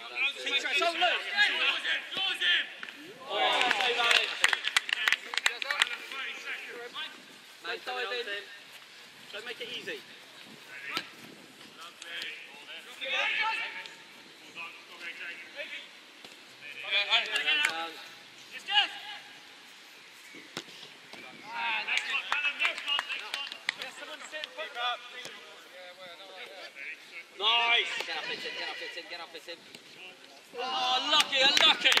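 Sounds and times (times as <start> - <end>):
players shouting: 27.4 - 29.1.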